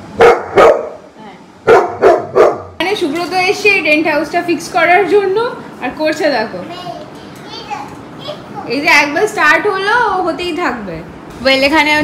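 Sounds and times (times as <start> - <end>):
woman speaking: 2.8 - 6.7, 8.7 - 12.0
small child chattering: 6.7 - 8.8.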